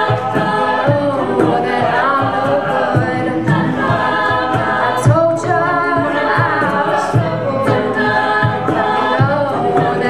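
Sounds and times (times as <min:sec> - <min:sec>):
backing vocal harmonies: 0:00.0 - 0:10.0
lead voice singing: 0:00.0 - 0:10.0
vocal percussion thumps: 0:00.0 - 0:10.0.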